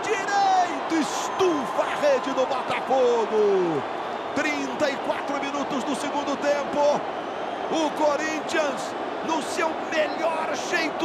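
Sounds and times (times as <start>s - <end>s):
man commentating: 0.0s - 7.0s, 7.7s - 11.0s
stadium crowd noise: 0.0s - 11.0s.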